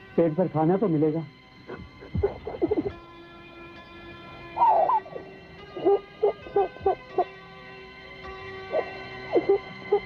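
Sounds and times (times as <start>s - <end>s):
soft background music pad: 0.0s - 10.0s.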